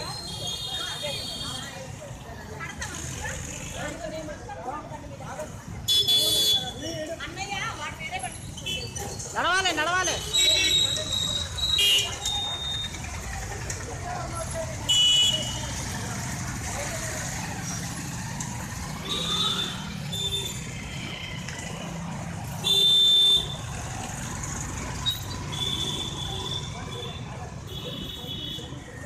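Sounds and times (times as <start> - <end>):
people's voices: 0.0 - 22.8
motorcycles riding past: 1.8 - 4.4, 10.9 - 29.0.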